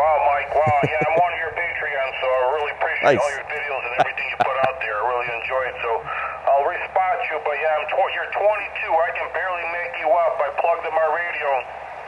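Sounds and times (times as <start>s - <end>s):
thin radio voice talking: 0.5s - 1.3s, 3.0s - 3.4s, 4.0s - 6.2s
radio band hiss: 0.5s - 1.4s, 2.7s - 7.4s.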